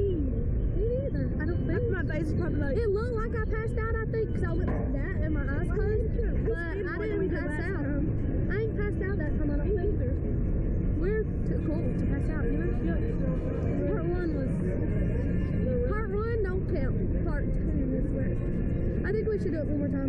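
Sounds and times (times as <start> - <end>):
girls talking: 0.0 - 10.2, 11.0 - 13.1, 13.8 - 14.8, 15.8 - 18.2, 19.0 - 20.0
steady low rumble: 0.0 - 20.0.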